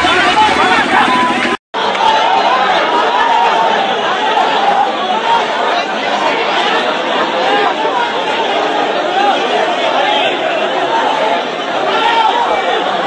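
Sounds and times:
crowd talking and calling out: 0.0s - 13.0s.

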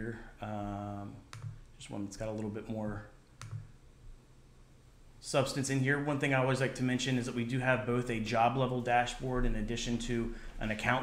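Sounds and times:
computer mouse click: 1.3s - 1.7s, 3.2s - 3.7s.

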